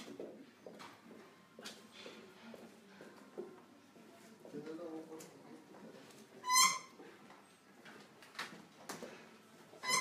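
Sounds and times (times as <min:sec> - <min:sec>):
short high squeak: 0:06.4 - 0:07.0.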